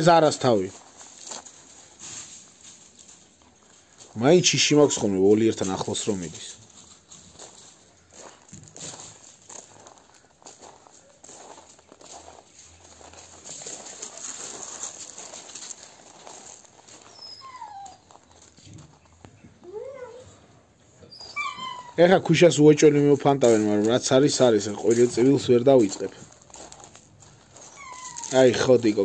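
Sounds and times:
dogs scuffling on gravel: 0:00.0 - 0:19.2, 0:21.3 - 0:29.0
dog whining: 0:17.0 - 0:18.3, 0:19.6 - 0:20.4, 0:21.0 - 0:22.0, 0:27.6 - 0:28.7.

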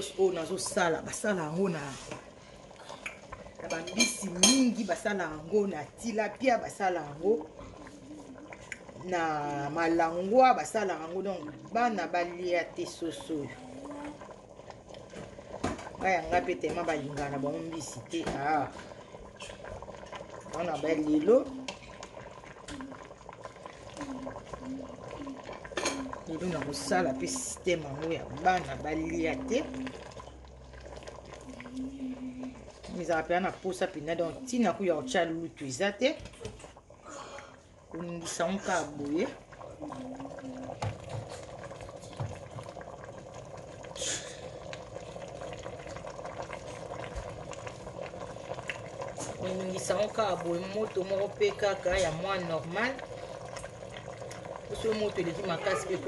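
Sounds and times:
sauce simmering in a pot: 0:00.0 - 0:56.0.

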